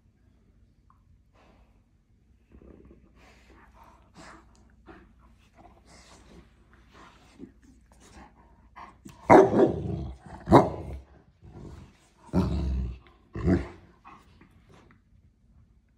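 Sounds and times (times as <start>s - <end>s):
dogs growling barks: 9.1s - 14.0s.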